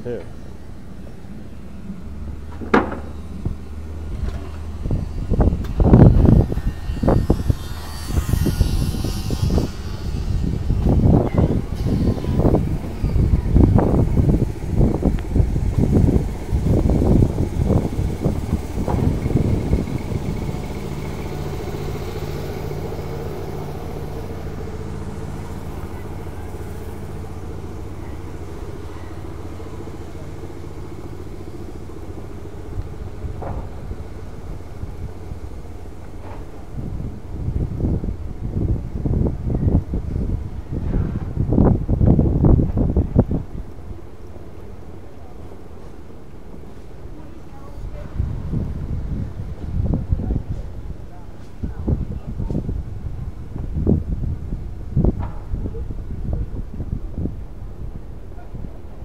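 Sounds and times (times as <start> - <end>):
small engine humming: 0.2 - 40.8
loud low thumps: 2.6 - 30.4.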